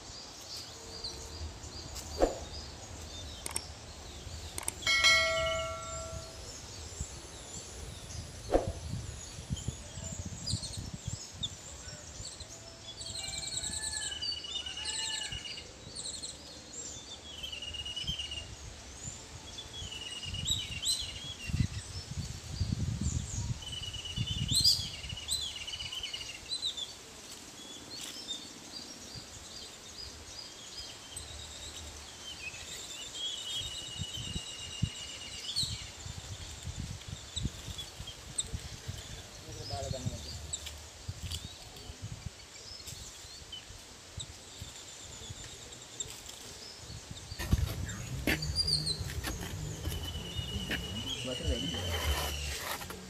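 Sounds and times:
birds chirping and singing: 0.0 - 53.0.

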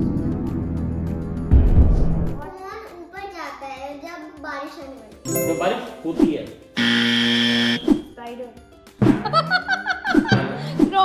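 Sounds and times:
quiz buzzer electronic buzz: 6.8 - 8.0.

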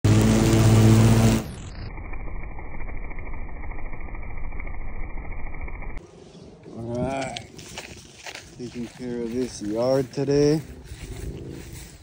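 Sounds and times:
lawn mower engine running: 0.0 - 6.0.

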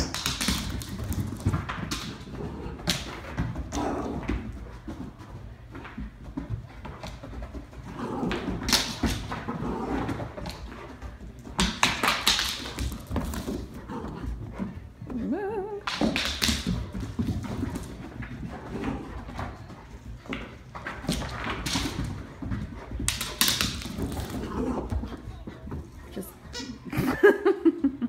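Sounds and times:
dogs scuffling in play: 0.0 - 27.3
paws tapping on floor: 0.0 - 28.0.

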